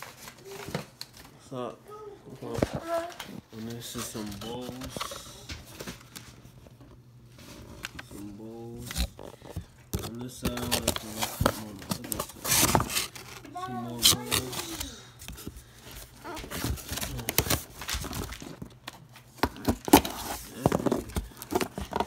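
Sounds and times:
knife cutting cardboard and tape: 10.0 - 14.9.

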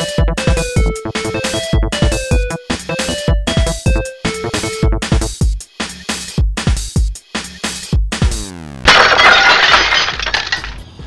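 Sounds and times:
glass shattering: 8.9 - 10.9.

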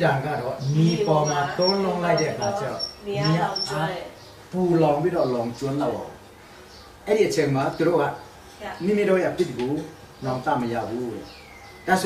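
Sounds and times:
man speaking: 0.0 - 3.8.

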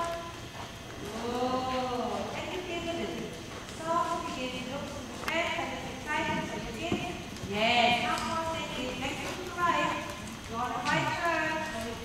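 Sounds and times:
person calling out: 10.8 - 11.2.

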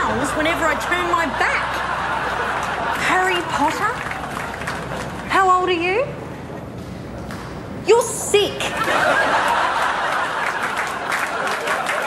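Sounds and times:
audience applauding: 2.3 - 5.3, 9.1 - 12.0.

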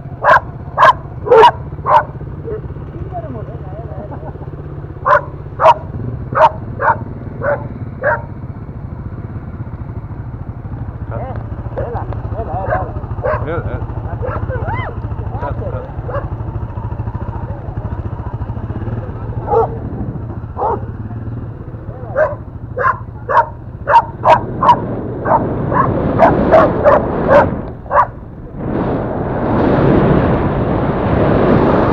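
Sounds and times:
moped engine running: 0.0 - 31.9
dogs barking: 0.2 - 2.7, 5.0 - 8.4, 11.8 - 15.0, 15.9 - 16.6, 19.3 - 21.1, 21.8 - 28.2
wind noise: 22.2 - 31.9.

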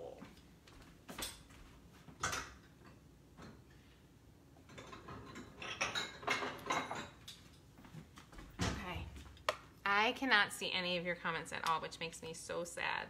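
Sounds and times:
dishes clinking and clattering: 1.2 - 3.7, 4.6 - 7.6.

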